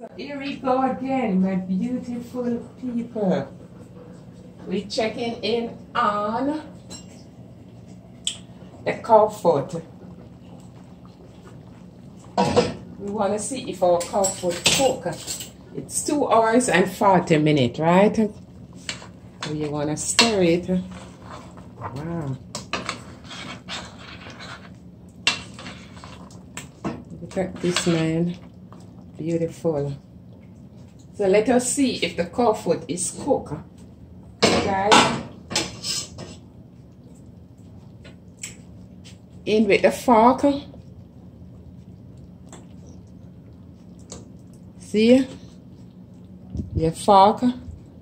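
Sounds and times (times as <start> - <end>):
low steady hum: 0.0 - 48.0
metal spoon scraping a pot: 18.8 - 21.8, 22.5 - 26.3, 27.4 - 28.1, 35.5 - 36.4.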